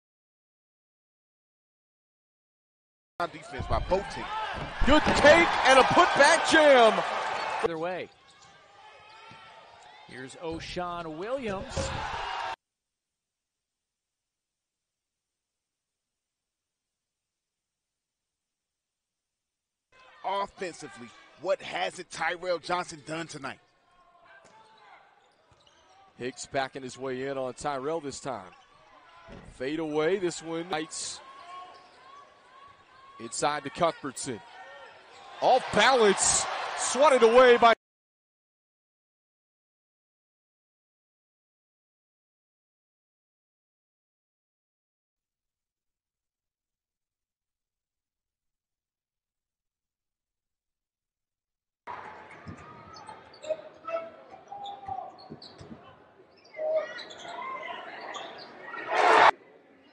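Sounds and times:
crowd noise in an arena: 3.2 - 12.6, 20.0 - 37.8, 51.9 - 59.9
shoes squeaking on hardwood: 54.6 - 57.6.

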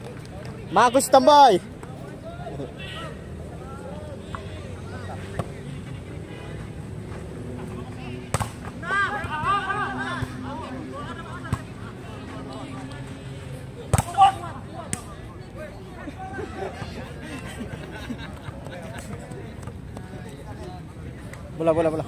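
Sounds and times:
players shouting: 0.6 - 6.8, 7.5 - 19.5
volleyball smacks: 8.3 - 8.7.

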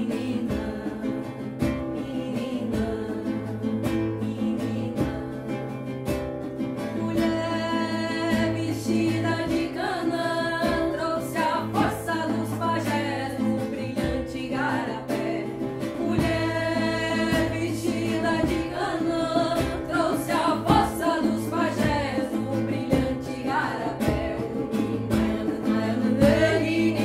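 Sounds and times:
group singing a chant: 0.0 - 5.8, 7.0 - 27.0
strummed strokes keeping time: 0.0 - 27.0.

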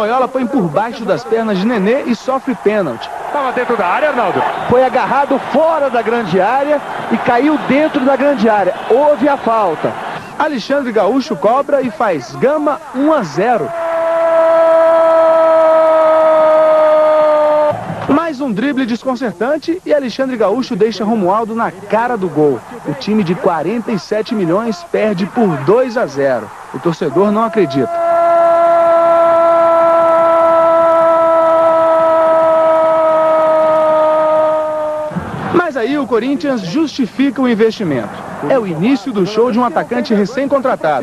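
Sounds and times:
man shouting long goal cry: 0.9 - 10.1, 12.1 - 17.8, 24.2 - 35.2
faint noisy background: 17.7 - 28.0
horn long note: 27.2 - 35.3.

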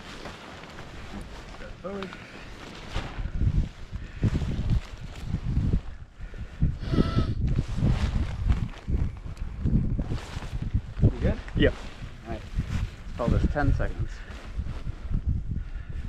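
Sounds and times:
wind gusting on microphone: 0.9 - 16.0.

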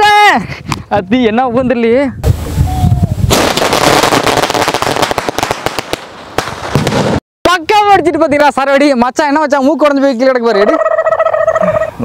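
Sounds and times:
fireworks cracking and banging: 3.3 - 7.2.

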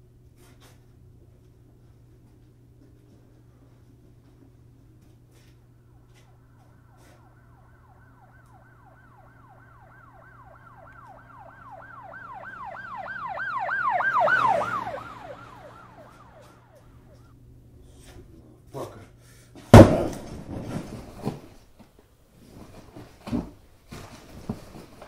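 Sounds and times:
steady low hum: 0.0 - 19.6
emergency siren yelping: 5.7 - 17.4.

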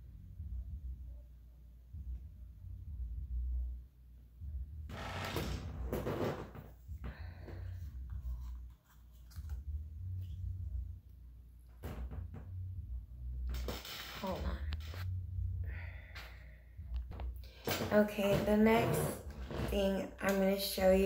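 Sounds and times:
low rumble: 1.8 - 20.2.

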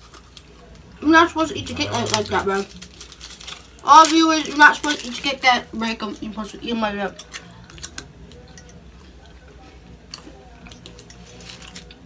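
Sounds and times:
low voices: 0.7 - 2.9
chewing candy: 7.2 - 12.0.

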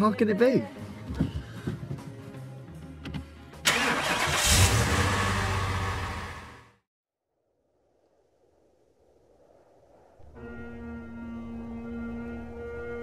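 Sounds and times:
car engine starting and running: 3.6 - 6.8.

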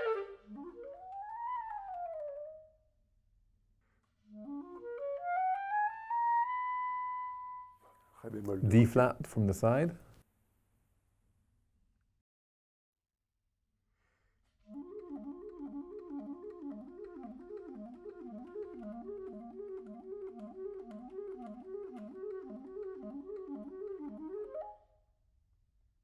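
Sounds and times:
clarinet playing fast runs: 0.0 - 2.5, 14.7 - 24.8.

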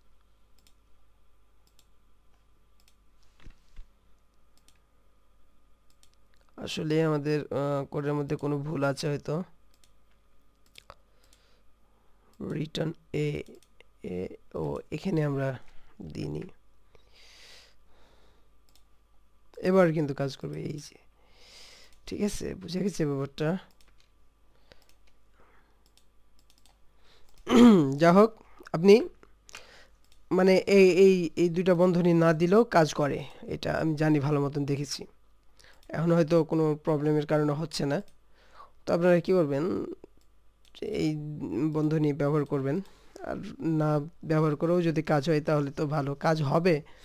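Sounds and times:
faint electrical hum: 0.0 - 47.0
computer mouse clicks: 0.2 - 0.8, 1.6 - 2.0, 2.7 - 4.9, 5.8 - 6.6, 9.7 - 11.5, 18.6 - 18.9, 23.7 - 25.2, 25.8 - 27.5, 29.5 - 30.3.

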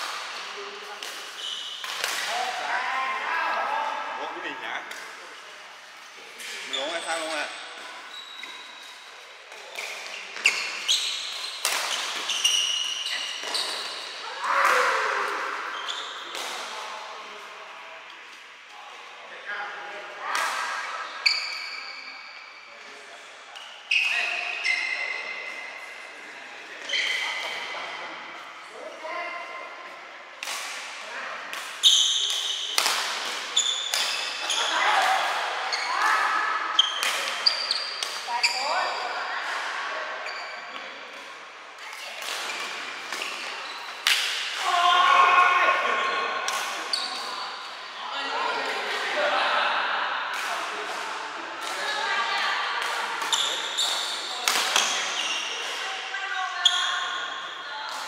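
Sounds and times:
shoes squeaking on court: 0.8 - 2.1, 6.4 - 14.2, 26.8 - 27.7, 33.4 - 34.9, 35.7 - 39.2, 40.2 - 40.9, 42.2 - 44.1, 46.8 - 47.6, 53.2 - 56.0.

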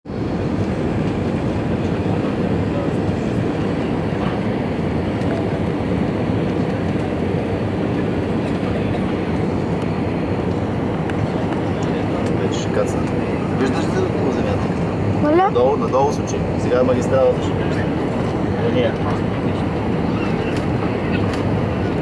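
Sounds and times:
airliner cabin engine rumble: 0.1 - 22.0.

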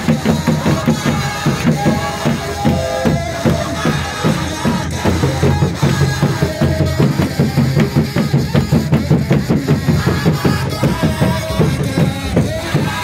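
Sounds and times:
congregation singing: 0.0 - 13.0
frame drums beating: 0.0 - 13.0.

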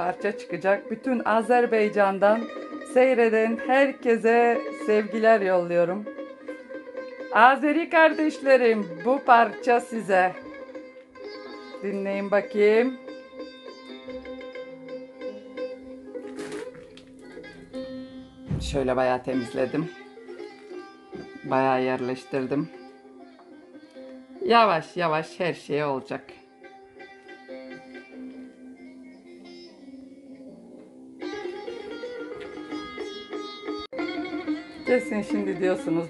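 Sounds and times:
instrumental music from radio speaker: 0.0 - 18.7, 19.4 - 24.6, 26.3 - 36.0.

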